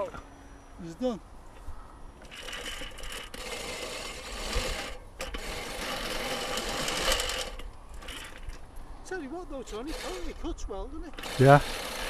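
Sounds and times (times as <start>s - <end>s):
electric motor and propeller whine: 1.6s - 8.7s, 9.7s - 10.4s, 11.1s - 12.0s.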